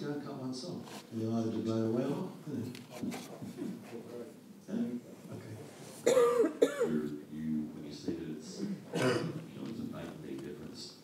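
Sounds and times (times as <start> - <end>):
man coughing: 6.0 - 7.0, 8.9 - 9.4.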